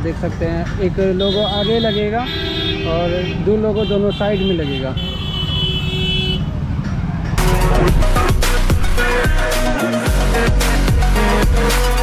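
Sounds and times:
vehicle horn sounding: 0:01.2 - 0:06.5.

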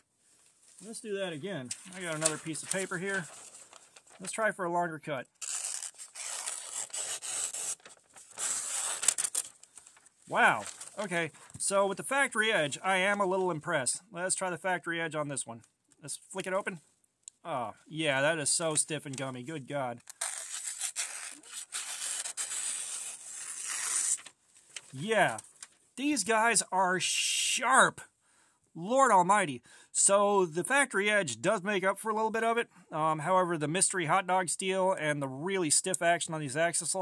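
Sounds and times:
knife slicing through paper: 0:05.4 - 0:09.6, 0:20.2 - 0:24.3.

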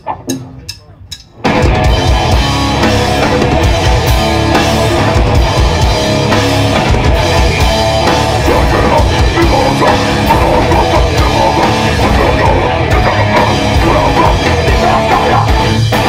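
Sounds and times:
heavy metal band playing: 0:00.0 - 0:16.0.

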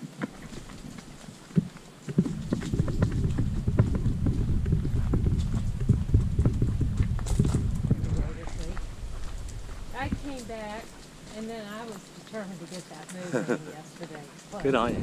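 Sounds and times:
footsteps on dirt trail: 0:00.0 - 0:15.0
microphone rumble and crackle: 0:00.0 - 0:15.0.

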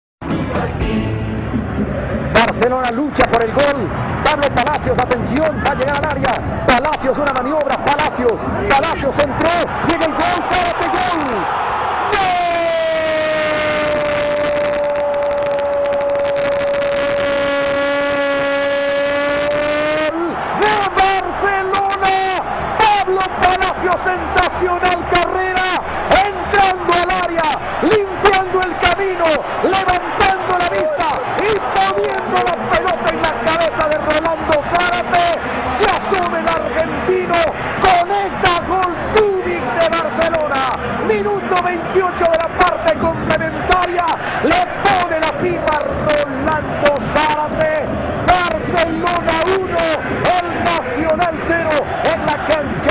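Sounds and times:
crowd noise: 0:00.2 - 0:52.9
man commentating excitedly: 0:02.3 - 0:52.9.

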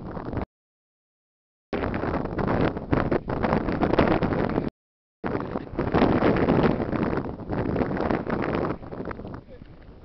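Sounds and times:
wind buffeting microphone: 0:00.0 - 0:00.5, 0:01.8 - 0:10.0.

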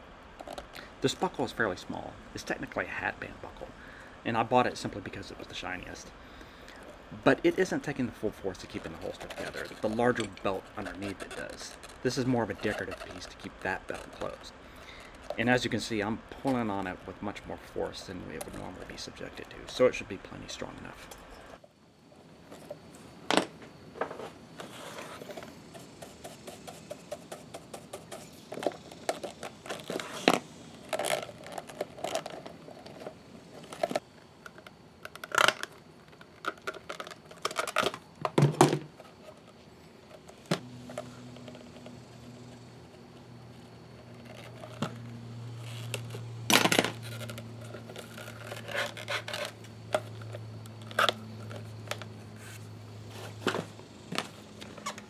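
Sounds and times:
low steady hum: 0:00.0 - 0:55.0
leather rubbing: 0:08.4 - 0:14.4, 0:47.0 - 0:49.6.

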